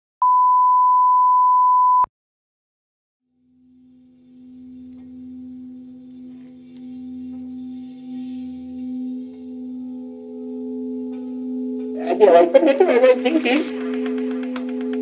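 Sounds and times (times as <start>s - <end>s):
steady drone tone: 3.4s - 15.0s.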